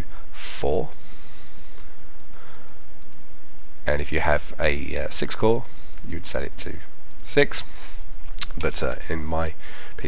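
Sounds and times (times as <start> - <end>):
computer mouse clicking: 1.3 - 3.2, 5.6 - 7.4.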